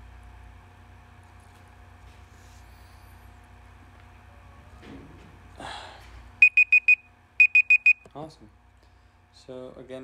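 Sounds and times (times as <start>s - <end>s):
timer alarm beeping: 6.4s - 8.1s.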